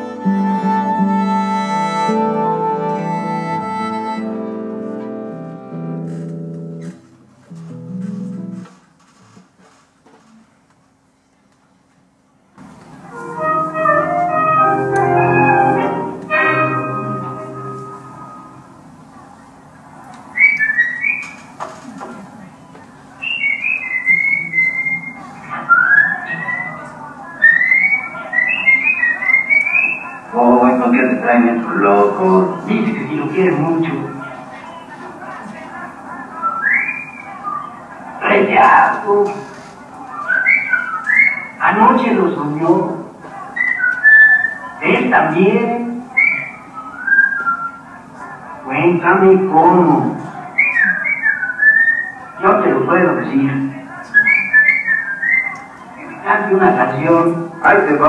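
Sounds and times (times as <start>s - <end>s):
whistled phrases: 20.3s - 21.5s, 23.2s - 33.4s, 36.1s - 38.0s, 40.1s - 42.2s, 43.4s - 48.0s, 50.4s - 53.2s, 53.9s - 57.2s.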